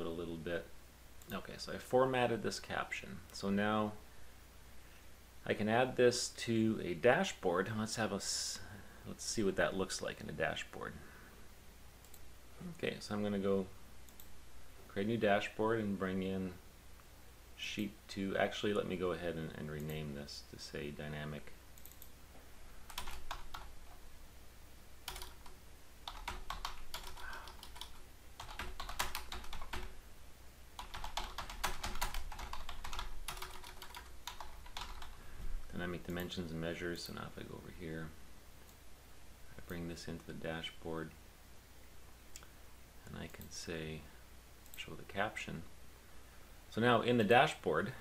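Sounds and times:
man speaking: 0.0s - 4.0s, 5.4s - 11.1s, 12.6s - 13.8s, 14.9s - 16.6s, 17.6s - 21.6s, 35.7s - 38.2s, 39.6s - 41.2s, 43.0s - 44.2s, 44.8s - 45.7s, 46.7s - 48.0s
low steady hum: 0.0s - 48.0s
computer mouse clicks: 21.8s - 22.2s
typing on computer keyboard: 22.9s - 23.7s, 25.1s - 29.9s, 30.8s - 35.2s.

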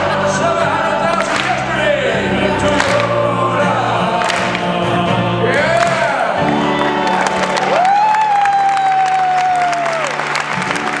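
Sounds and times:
vocal group singing: 0.0s - 7.3s
audience applause: 5.7s - 11.0s.

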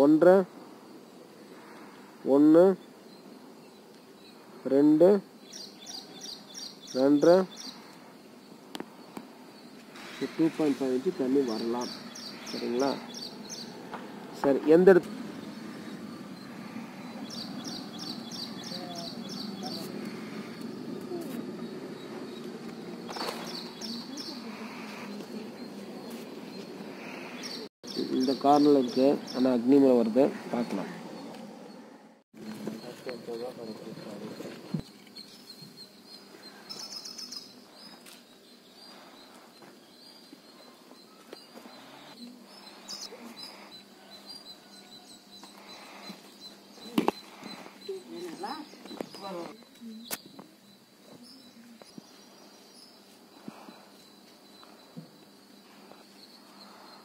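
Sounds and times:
small bird chirping: 2.8s - 57.0s.

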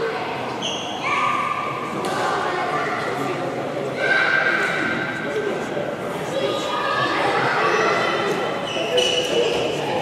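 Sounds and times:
crowd chatter echoing: 0.0s - 10.0s
sports shoes squeaking on court: 0.6s - 1.0s, 8.6s - 9.8s.

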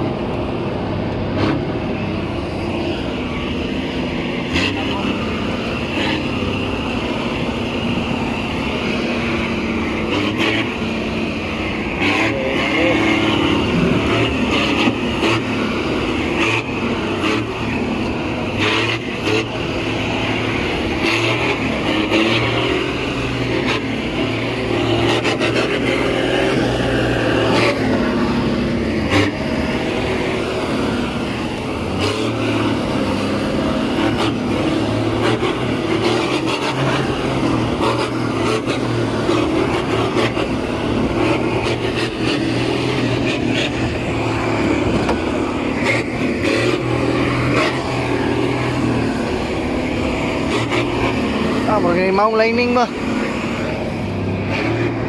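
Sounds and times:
engine working under heavy load: 0.0s - 55.0s.

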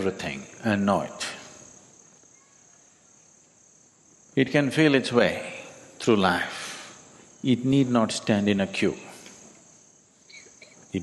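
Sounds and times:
man talking: 0.0s - 1.5s, 4.4s - 6.8s, 7.4s - 9.2s
insects chirring: 0.0s - 11.0s.

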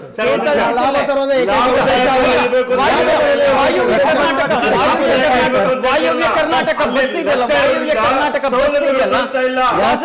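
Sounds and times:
men talking over one another: 0.2s - 10.0s.

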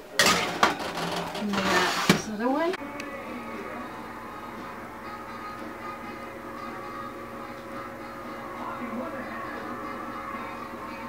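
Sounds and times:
faint background music: 0.0s - 11.0s
baking sheet clanking and scraping: 0.2s - 2.4s.

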